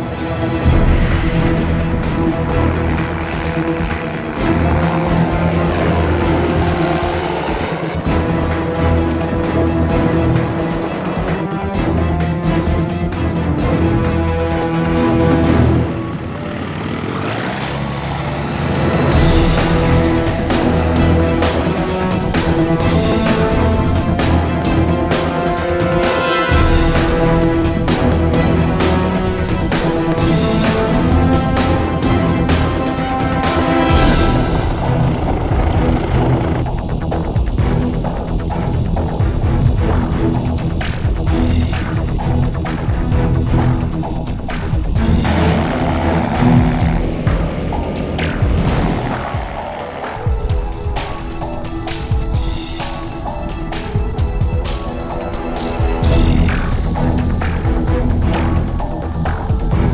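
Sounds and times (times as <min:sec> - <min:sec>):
music soundtrack: 0:00.0 - 0:59.9
ultralight engine and propeller: 0:00.0 - 0:59.9.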